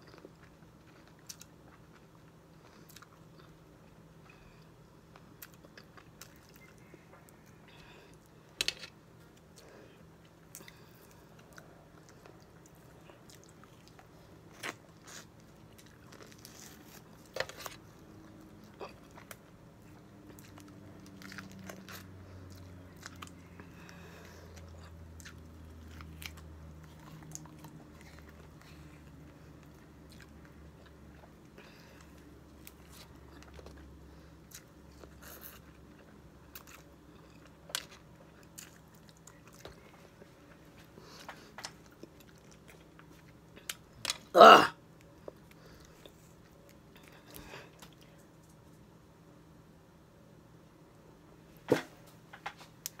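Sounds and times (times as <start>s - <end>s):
wet chewing of citrus: 9.4s - 44.3s.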